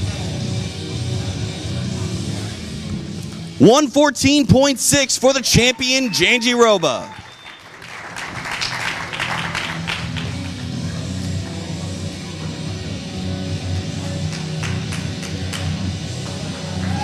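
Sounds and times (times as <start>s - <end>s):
audience applause: 5.6s - 10.8s.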